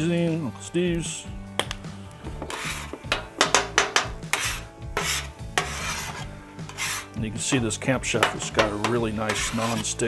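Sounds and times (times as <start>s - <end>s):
metal spatula scraping griddle: 2.4s - 7.2s, 8.1s - 10.0s.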